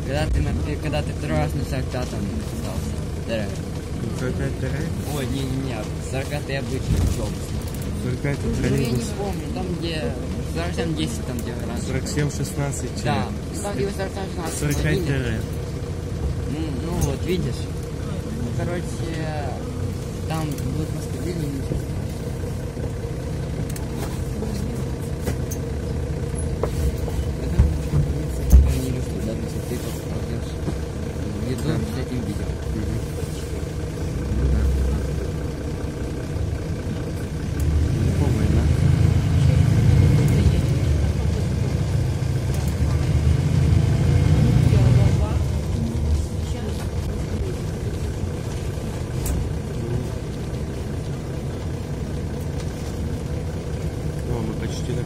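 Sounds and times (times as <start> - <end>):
diesel bus engine: 0.0 - 55.0
road rumble: 0.0 - 55.0.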